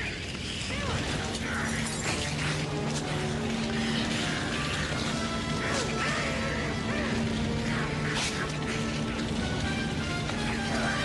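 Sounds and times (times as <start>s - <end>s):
flames crackling and clattering: 0.0s - 11.0s
music with low held tones: 0.0s - 11.0s.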